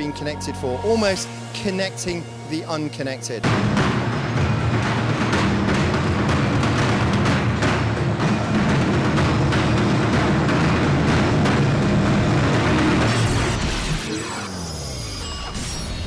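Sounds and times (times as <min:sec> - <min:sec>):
drummers beating steel barrels: 0:03.3 - 0:13.3.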